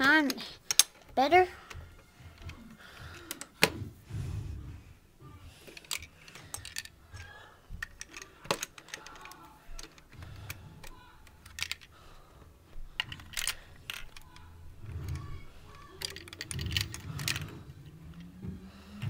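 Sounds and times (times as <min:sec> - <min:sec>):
plastic bricks clicking and clattering: 0:05.6 - 0:11.9, 0:12.9 - 0:18.2.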